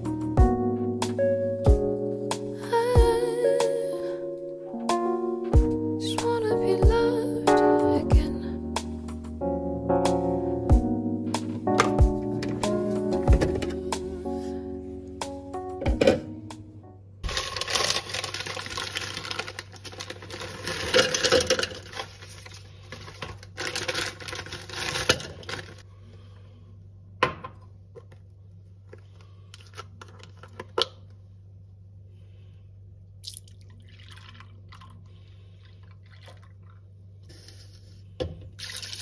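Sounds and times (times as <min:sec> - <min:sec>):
background music: 0:00.0 - 0:17.2
plastic bag crinkling: 0:17.2 - 0:25.8
milk pouring into a jug: 0:33.3 - 0:36.9, 0:38.6 - 0:39.0.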